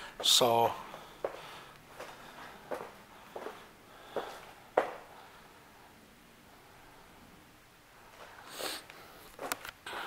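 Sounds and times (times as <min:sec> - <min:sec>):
footsteps on hard floor: 0:00.2 - 0:05.1.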